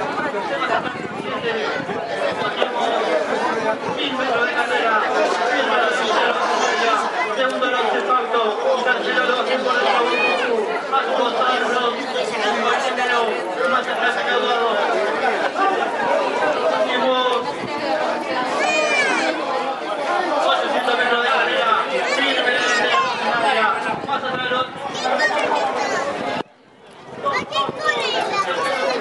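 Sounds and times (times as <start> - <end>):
people talking over one another: 0.0 - 29.0.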